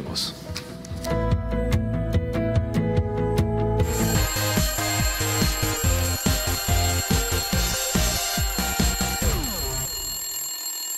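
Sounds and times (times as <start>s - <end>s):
upbeat tv jingle: 3.8s - 10.3s
alarm clock bell ringing: 3.8s - 10.9s.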